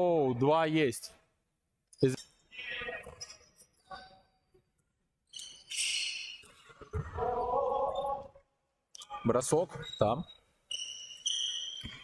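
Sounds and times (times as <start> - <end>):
shoe squeak: 5.3 - 6.8, 9.7 - 12.0.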